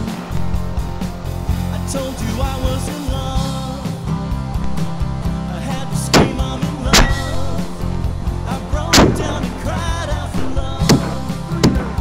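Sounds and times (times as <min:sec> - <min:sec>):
rock song with singing: 0:00.0 - 0:12.0
rifle shots with echo: 0:06.1 - 0:07.6, 0:08.9 - 0:09.5.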